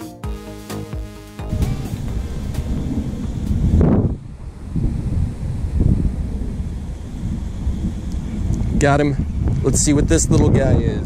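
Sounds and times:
wind buffeting microphone: 0:01.5 - 0:11.0.

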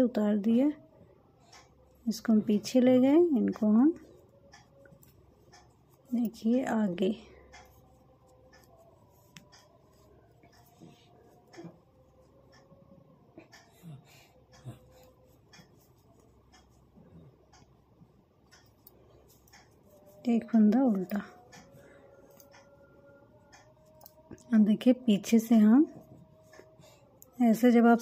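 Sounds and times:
knitting needles rubbing and ticking: 0:01.4 - 0:28.0.

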